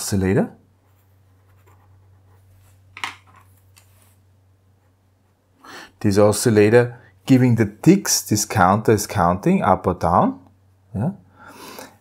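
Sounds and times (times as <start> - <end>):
low steady hum: 0.0 - 11.5
pen scratching on paper: 0.8 - 2.6.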